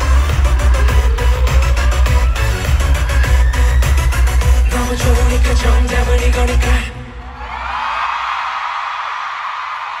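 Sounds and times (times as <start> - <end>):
audience screaming and cheering: 6.4 - 10.0.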